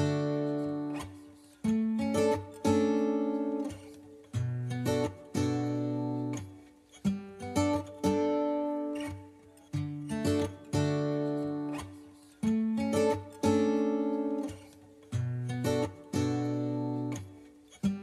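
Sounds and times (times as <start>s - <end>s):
acoustic guitar chords strummed: 0.0s - 18.0s.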